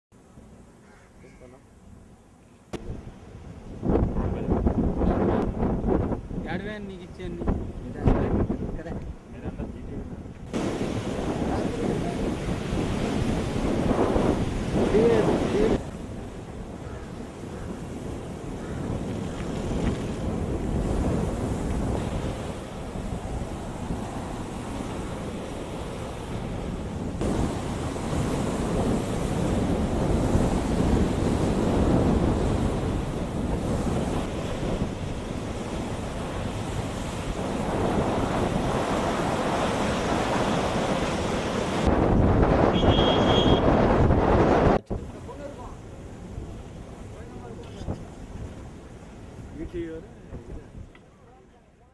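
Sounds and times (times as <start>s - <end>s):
wind buffeting microphone: 2.7s - 51.2s
waves breaking against shore: 10.4s - 50.9s.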